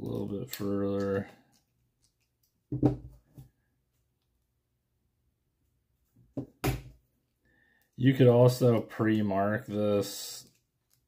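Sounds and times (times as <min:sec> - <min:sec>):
screwdriver knocking on table: 0:02.7 - 0:03.2.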